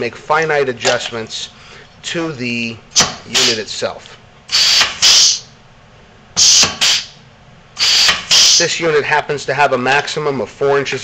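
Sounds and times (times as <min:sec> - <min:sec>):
pneumatic air hiss bursts: 0:03.0 - 0:03.6, 0:04.5 - 0:05.5, 0:06.4 - 0:07.2, 0:07.8 - 0:08.7.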